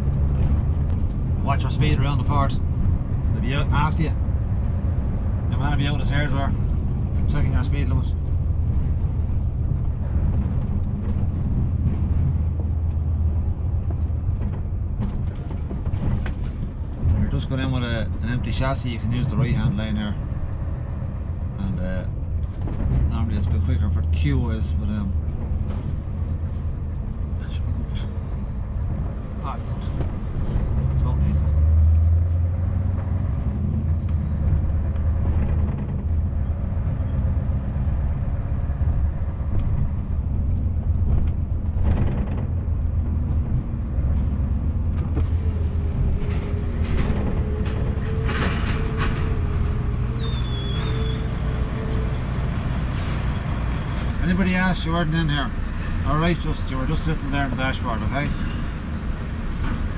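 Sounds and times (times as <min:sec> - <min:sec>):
truck engine running: 0:00.0 - 0:21.5, 0:22.2 - 0:59.9
tyre and road rumble: 0:00.0 - 0:59.9.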